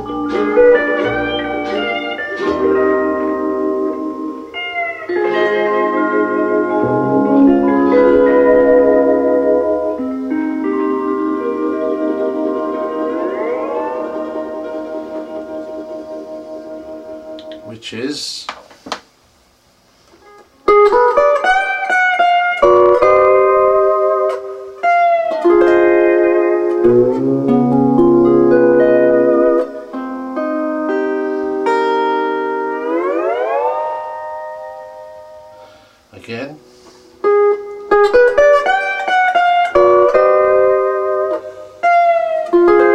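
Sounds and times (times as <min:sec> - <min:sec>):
steel guitar chord sliding up: 0:00.0 - 0:17.3, 0:22.6 - 0:36.0, 0:36.6 - 0:42.9.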